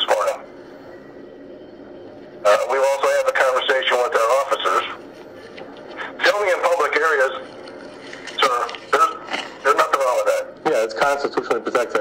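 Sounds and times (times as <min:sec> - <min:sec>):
man speaking over a phone: 0:00.0 - 0:00.5, 0:02.4 - 0:05.0, 0:06.0 - 0:07.5, 0:08.3 - 0:12.0
low steady line hiss: 0:00.0 - 0:12.0.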